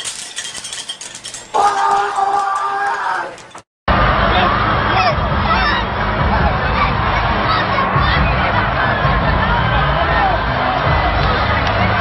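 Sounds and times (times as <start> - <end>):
arena crowd yelling: 1.5 - 12.0.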